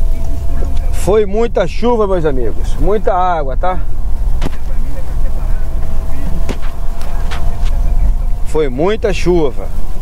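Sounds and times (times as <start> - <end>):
car road and engine rumble: 0.0 - 10.0.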